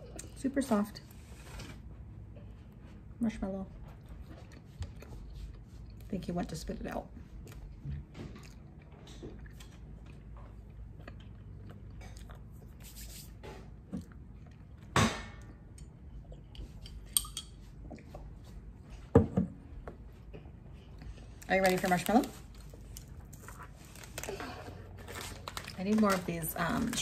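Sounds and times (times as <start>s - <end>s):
faint chewing: 3.8s - 6.2s, 7.2s - 13.0s.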